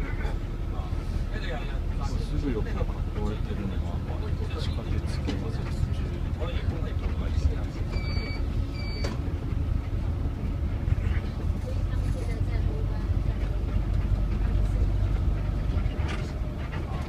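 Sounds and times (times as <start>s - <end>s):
bus engine and tyres rumbling: 0.0s - 17.0s
faint voices: 9.5s - 17.0s.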